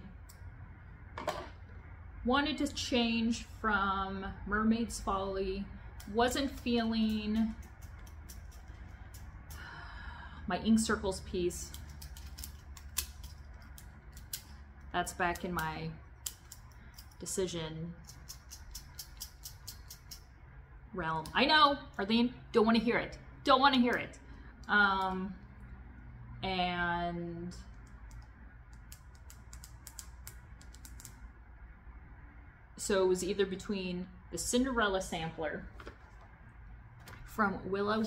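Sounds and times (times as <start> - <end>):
low steady hum: 0.0 - 38.0.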